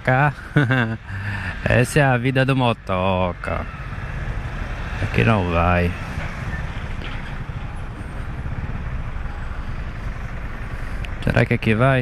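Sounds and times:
bus idling: 0.0 - 12.0
motorcycle engine rumble: 0.0 - 12.0.

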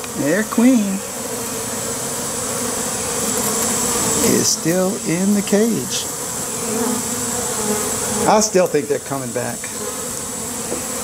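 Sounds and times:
swarm of bees buzzing: 0.0 - 11.0.

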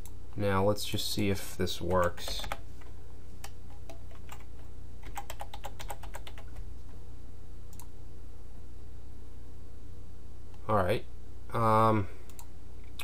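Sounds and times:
steady low hum: 0.0 - 13.0
computer keyboard typing: 1.9 - 6.7.

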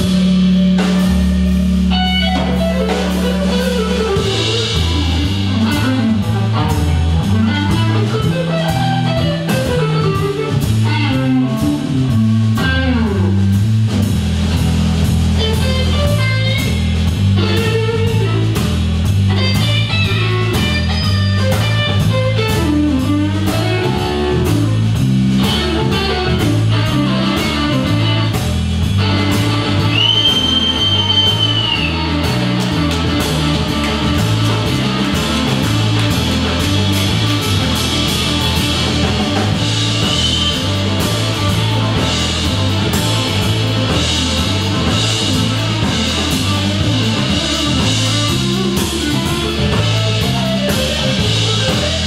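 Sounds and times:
drum kit steady beat: 0.0 - 52.0
electric bass: 0.0 - 52.0
electric guitar with bent notes: 0.0 - 52.0.

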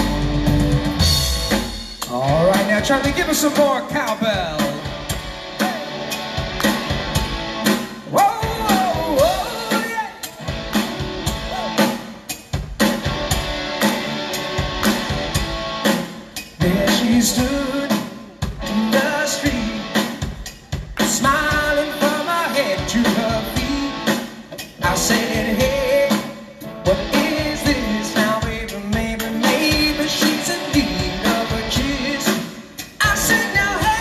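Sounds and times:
live rock band playing: 0.0 - 34.0
lead vocal singing: 8.0 - 10.4, 16.5 - 34.0.

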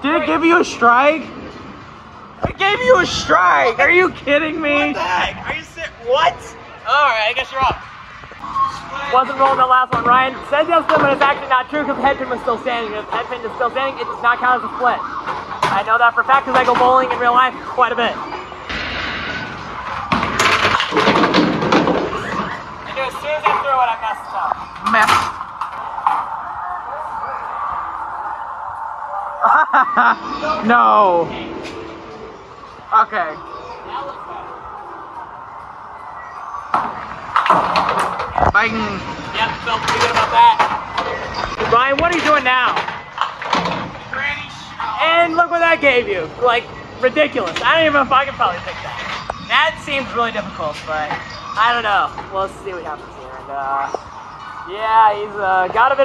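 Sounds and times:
arcade background din: 0.0 - 56.0
indistinct voices: 8.4 - 56.0
bowling pins clattering: 20.0 - 22.6.

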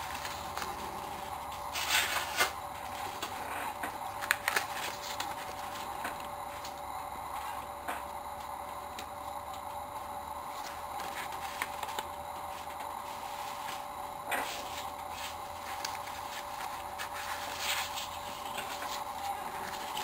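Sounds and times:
paper banknotes rustling: 0.0 - 3.4, 4.0 - 6.8, 10.5 - 20.0
steady background hum: 0.0 - 20.0.

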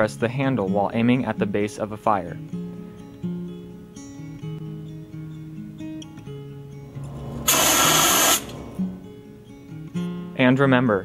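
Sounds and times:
acoustic guitar music: 0.0 - 11.0
fire extinguisher hissing: 7.0 - 8.9.

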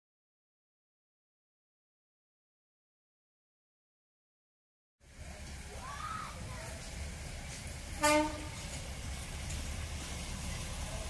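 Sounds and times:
locomotive horn toot: 8.0 - 8.7.

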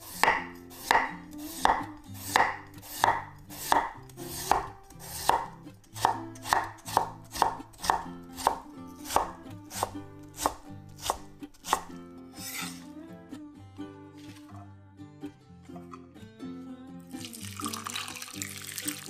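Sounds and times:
knife cutting potato on wooden board: 0.0 - 12.8.

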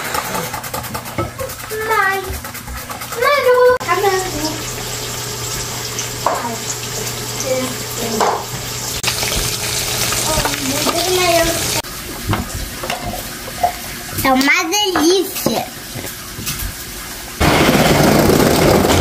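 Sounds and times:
water trickling into pitcher: 3.0 - 14.0.

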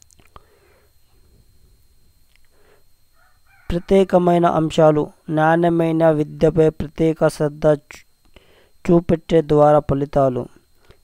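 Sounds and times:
faint breathing: 0.3 - 1.4, 2.4 - 3.0, 8.3 - 8.8, 10.7 - 11.0
person speaking: 3.7 - 10.6.

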